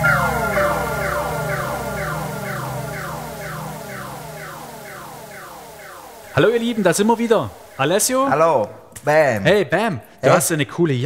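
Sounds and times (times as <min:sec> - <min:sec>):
falling synth tones: 0:00.0 - 0:08.7.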